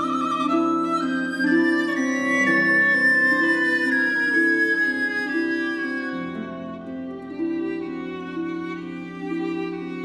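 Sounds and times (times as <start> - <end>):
violin playing slow notes: 0.0 - 10.0.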